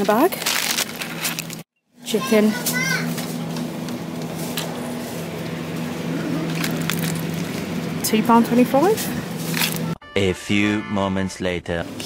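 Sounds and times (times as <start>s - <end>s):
refrigerated cabinets humming: 0.0s - 10.0s
store background noise: 0.0s - 10.0s.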